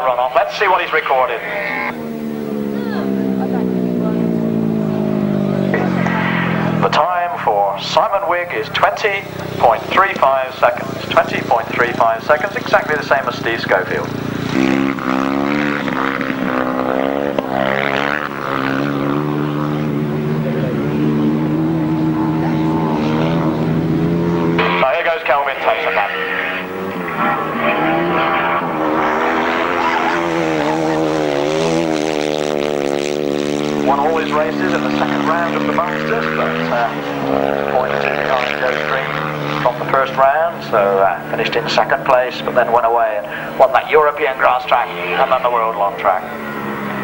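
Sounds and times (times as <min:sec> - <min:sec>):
motorcycle engine running flat out: 0:00.0 - 0:47.0.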